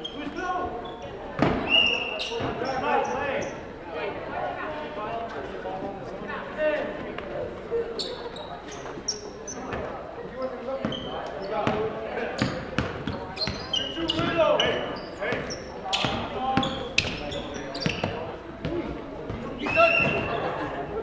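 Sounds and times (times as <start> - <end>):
sneaker squeaks: 0.0 - 3.7, 7.9 - 20.6.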